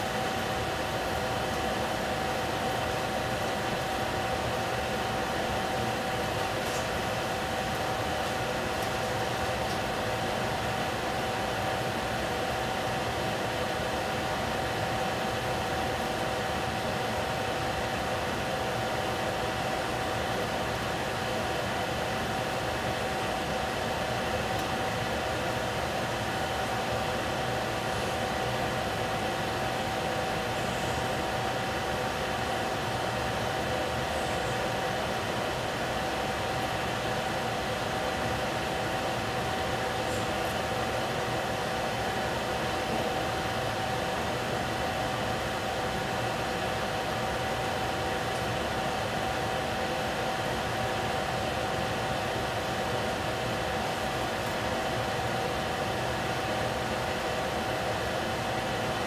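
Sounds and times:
constant hum-like tone: 0.0 - 59.0.

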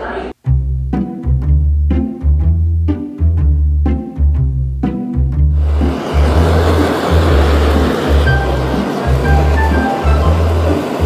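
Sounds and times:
background music with bass line: 0.4 - 10.9
blowtorch flame hissing: 5.6 - 11.0.

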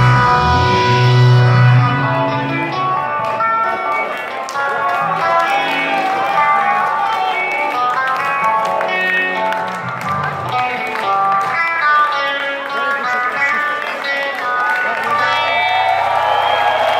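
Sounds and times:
live punk rock band playing: 0.0 - 16.4
electric guitars: 0.0 - 16.9.

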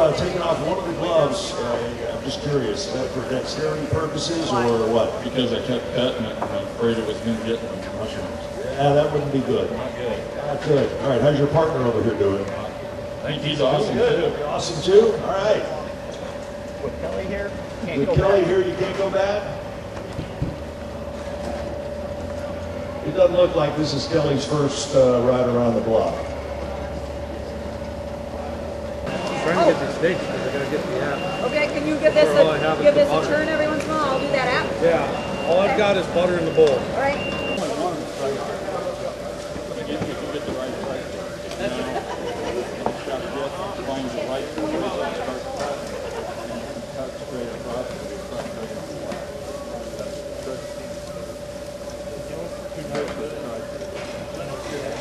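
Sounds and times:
machine hum with low rumble: 0.0 - 55.0
people talking: 0.0 - 55.0.

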